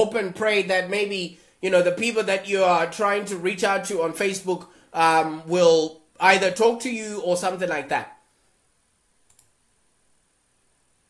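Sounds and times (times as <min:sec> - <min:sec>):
faint clicks: 0:09.2 - 0:09.6.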